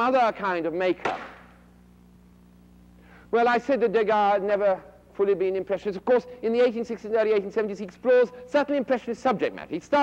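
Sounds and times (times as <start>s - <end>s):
low steady hum: 0.0s - 10.0s
slide projector clunk: 1.0s - 1.5s.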